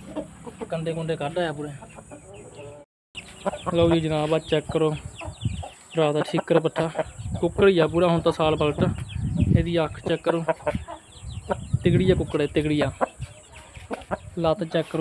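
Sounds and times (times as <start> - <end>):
chickens clucking: 0.0 - 15.0.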